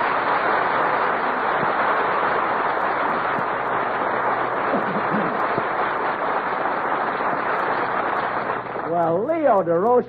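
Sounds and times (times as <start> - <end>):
audience applauding: 0.0 - 9.7.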